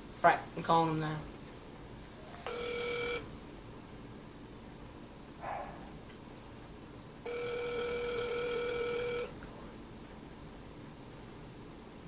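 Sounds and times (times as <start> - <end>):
electronic telephone ring: 2.5 - 3.3, 7.2 - 9.4.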